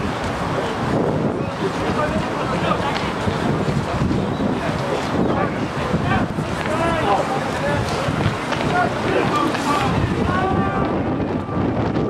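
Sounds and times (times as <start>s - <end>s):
wind buffeting microphone: 0.0s - 12.0s
people shouting calls: 4.2s - 11.8s.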